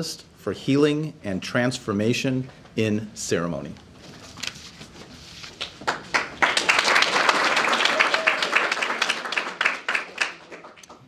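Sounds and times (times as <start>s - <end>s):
audience applauding: 5.7s - 11.0s.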